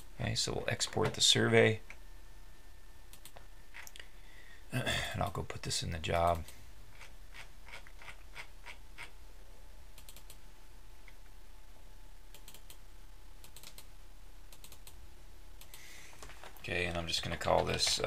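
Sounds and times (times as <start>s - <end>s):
steady low hum: 0.0s - 18.0s
computer mouse clicking: 3.1s - 4.0s, 10.0s - 10.4s, 12.3s - 12.8s, 13.4s - 13.9s, 14.5s - 15.0s.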